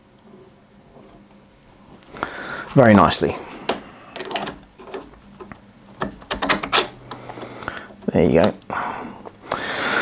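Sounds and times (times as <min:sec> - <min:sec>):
metal handle scraping and clicking: 0:03.7 - 0:07.5.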